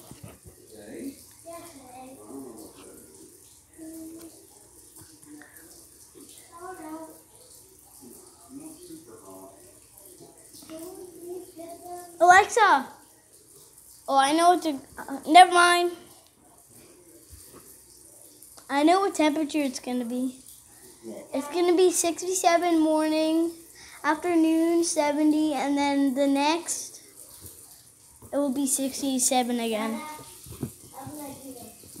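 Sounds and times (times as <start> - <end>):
quiet speech: 0.5 - 13.4
child talking: 1.4 - 2.7, 3.8 - 4.4, 6.5 - 7.3, 10.6 - 13.0, 14.1 - 16.1, 18.7 - 20.4, 21.3 - 27.0, 28.3 - 32.0.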